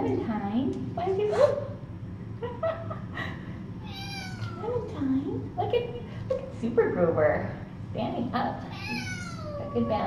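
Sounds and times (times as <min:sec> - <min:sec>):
kitten meowing: 0:03.8 - 0:04.6, 0:08.7 - 0:10.0.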